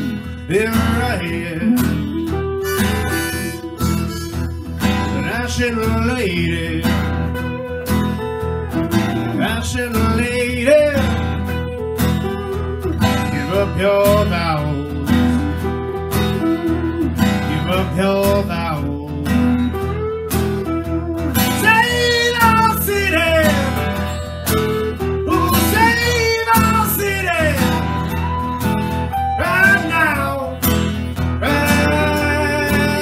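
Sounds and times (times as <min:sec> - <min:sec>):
acoustic guitar strumming: 0:00.0 - 0:33.0
electric guitar: 0:00.0 - 0:33.0
lead guitar bending notes: 0:00.0 - 0:33.0.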